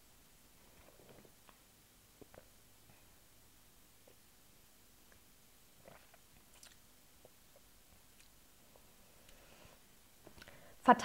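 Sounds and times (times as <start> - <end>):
faint mouth clicks and lip smacks: 5.9 - 8.4, 10.3 - 10.6.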